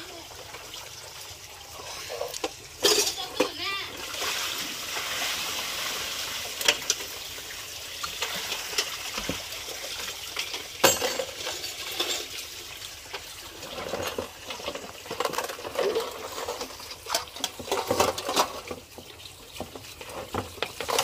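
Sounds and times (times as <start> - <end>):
water sloshing in a basin: 0.0 - 21.0
plates clattering together: 2.8 - 3.6, 10.8 - 12.3.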